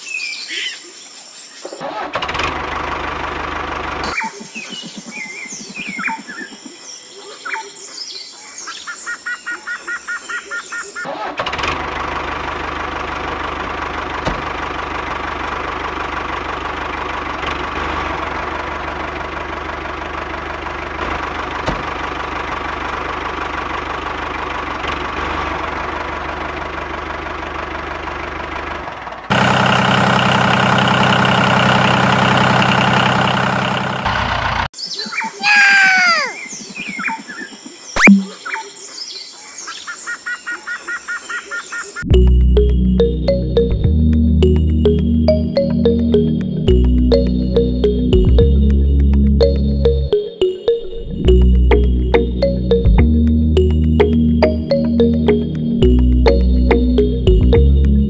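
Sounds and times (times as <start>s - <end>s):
engine running: 2.3s - 4.2s, 11.5s - 34.7s, 42.1s - 58.0s
loud engine idling: 11.6s - 34.7s
birds chirping: 34.8s - 43.6s.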